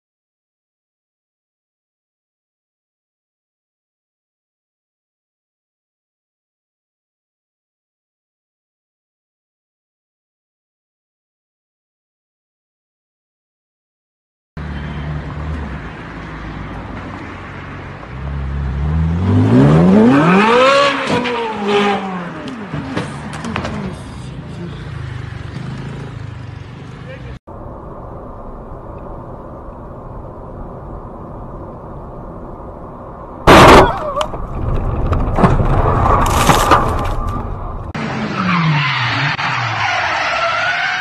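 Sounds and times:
car and road noise: 14.6 - 41.0
car engine: 14.6 - 41.0
loud sudden bang: 33.5 - 34.2
sharp cracks: 33.5 - 37.6
car tyres squealing: 33.5 - 41.0.

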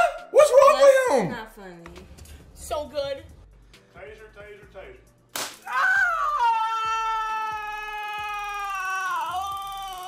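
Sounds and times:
taser crack: 5.3 - 5.8
woman screaming: 5.7 - 10.0.

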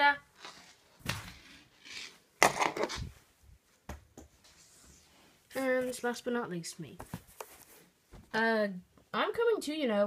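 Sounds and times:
scuffle and thump: 1.0 - 1.5, 7.0 - 8.4
plush toys rustling: 2.8 - 8.4.

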